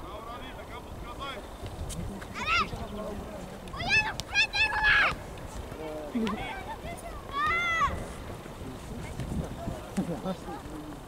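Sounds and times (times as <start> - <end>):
low background noise: 0.0 - 11.0
children shouting: 3.7 - 5.2, 6.3 - 8.1.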